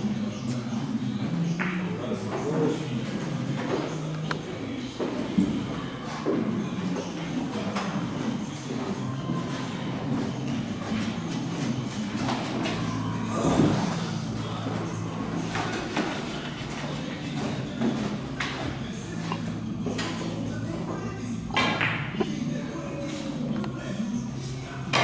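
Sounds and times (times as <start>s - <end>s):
murmur of voices: 0.0s - 25.0s.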